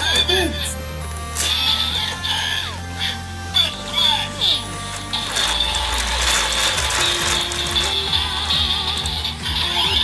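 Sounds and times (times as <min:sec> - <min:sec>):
electronic toy music: 0:00.0 - 0:10.0
toy crank ratcheting: 0:03.6 - 0:10.0.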